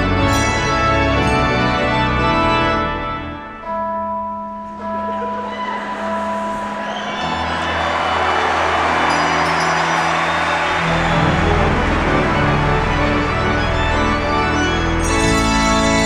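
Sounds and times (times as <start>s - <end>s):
pipe organ chords: 0.0s - 16.0s
handbells ringing: 4.2s - 11.1s, 14.7s - 16.0s.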